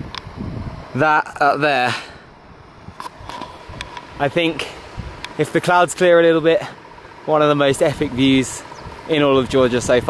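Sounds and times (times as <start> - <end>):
wind rumbling on microphone: 0.0 - 1.6, 2.2 - 10.0.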